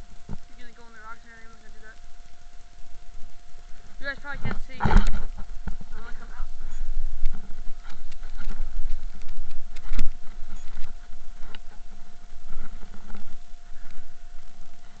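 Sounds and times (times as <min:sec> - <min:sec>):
faint steady whine: 0:00.0 - 0:15.0
low rumble: 0:00.0 - 0:15.0.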